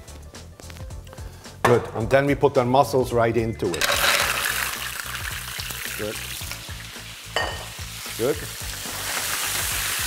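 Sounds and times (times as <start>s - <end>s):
mussels sizzling in hot oil: 3.8s - 10.0s.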